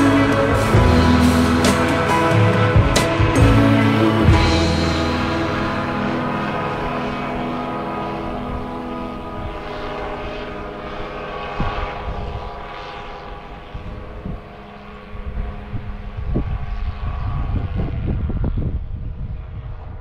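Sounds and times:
propeller engine droning: 0.0s - 20.0s
wind buffeting microphone: 5.5s - 20.0s.

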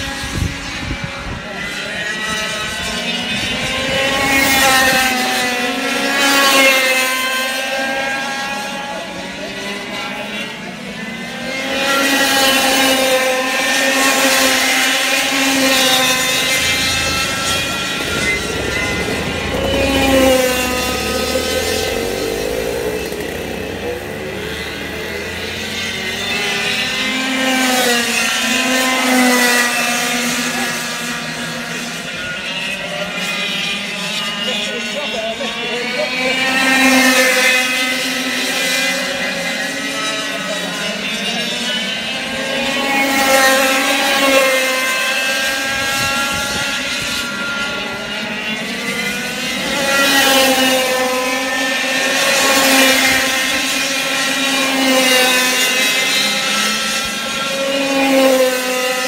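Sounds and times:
racing kart engines passing: 0.0s - 59.0s.

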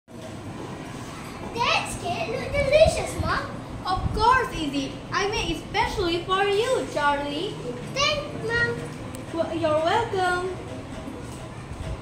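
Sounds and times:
children's voices: 0.8s - 12.0s.

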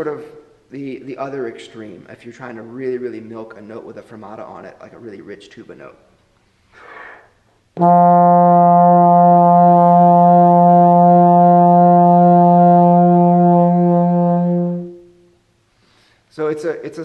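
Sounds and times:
bass trombone long note with vibrato: 7.8s - 15.0s.

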